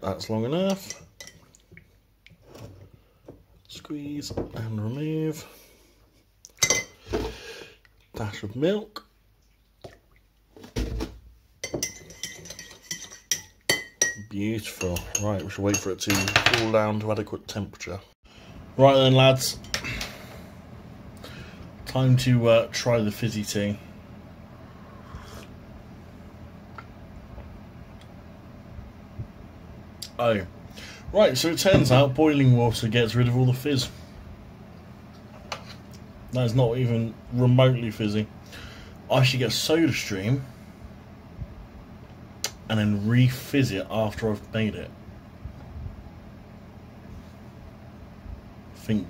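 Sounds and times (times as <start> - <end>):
low steady hum: 0.0 - 49.0.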